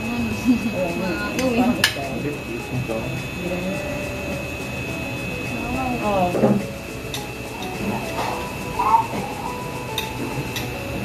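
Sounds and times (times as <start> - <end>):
steady high whine: 0.0 - 11.0
voices talking: 0.0 - 11.0.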